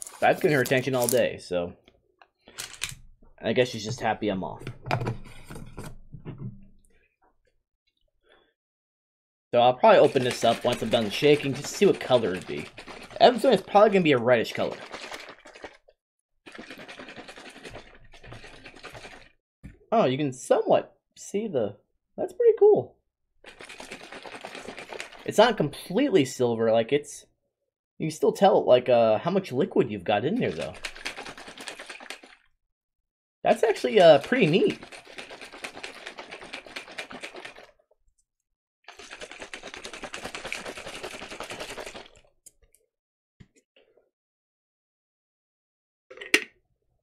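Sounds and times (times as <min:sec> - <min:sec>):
shaker cup rattling: 0:00.0 - 0:01.3, 0:09.9 - 0:15.8, 0:16.5 - 0:19.3, 0:23.4 - 0:25.3, 0:30.4 - 0:32.5, 0:33.6 - 0:37.7, 0:38.9 - 0:42.3.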